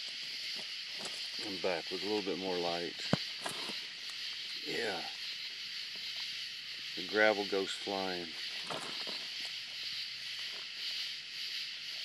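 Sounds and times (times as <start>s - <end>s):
animals scuffling on gravel: 0.0s - 4.5s, 5.7s - 12.0s
night insects hissing: 0.0s - 12.0s.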